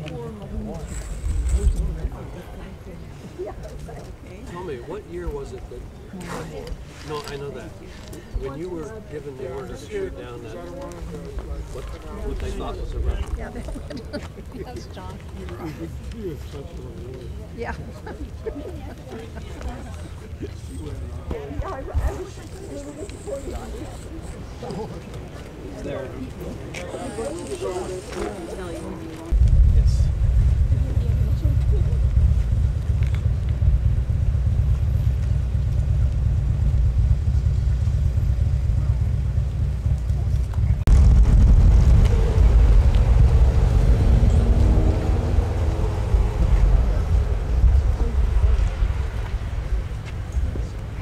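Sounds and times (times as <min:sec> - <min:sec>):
faint crowd voices: 0:00.0 - 0:32.9, 0:37.5 - 0:51.0
person laughing: 0:13.7 - 0:14.7
wind buffeting microphone: 0:29.3 - 0:51.0.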